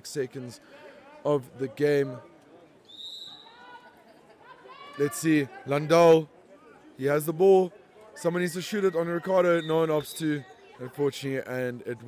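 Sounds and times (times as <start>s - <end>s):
referee's whistle blast: 2.9s - 3.6s, 9.0s - 10.2s.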